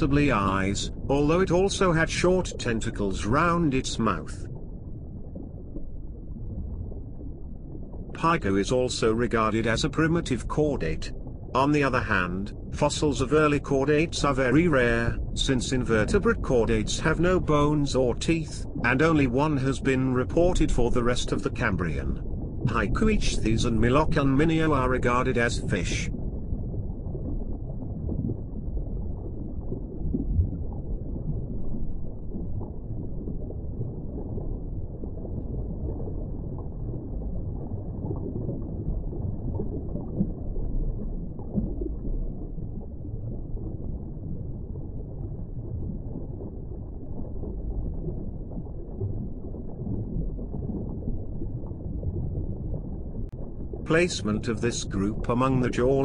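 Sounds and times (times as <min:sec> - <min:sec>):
muffled underwater water noise: 0:00.0 - 0:56.0.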